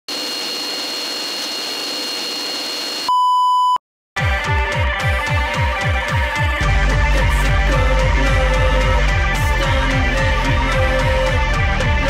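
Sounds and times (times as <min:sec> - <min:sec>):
loud pure beep: 0:00.1 - 0:03.8.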